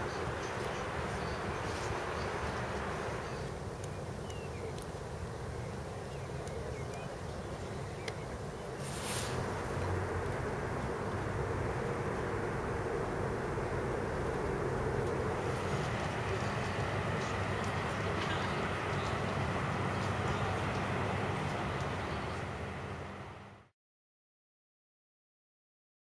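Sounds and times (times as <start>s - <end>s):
distant city traffic rumble: 0.0s - 23.7s
faint clicks: 2.6s - 5.1s, 6.3s - 7.1s, 14.2s - 22.5s.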